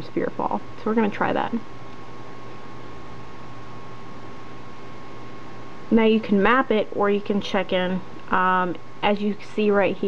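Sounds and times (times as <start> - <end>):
faint thin whine: 0.0 - 10.0
low hum: 0.0 - 10.0
room tone hiss: 0.0 - 10.0.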